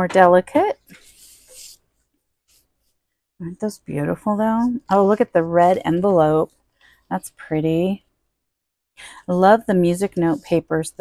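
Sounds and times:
paper sheets sliding and rustling: 0.9s - 1.8s.

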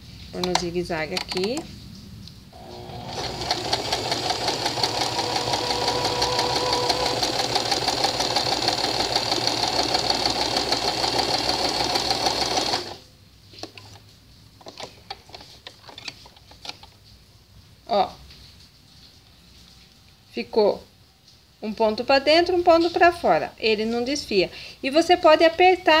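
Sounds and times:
sewing machine running: 2.6s - 13.0s.

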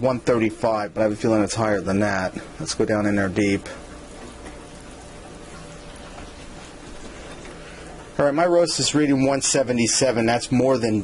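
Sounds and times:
roast sizzling and crackling: 3.8s - 8.2s.

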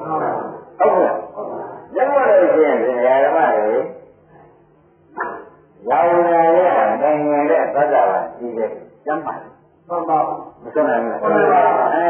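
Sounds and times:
dog bark: 5.1s - 5.6s.

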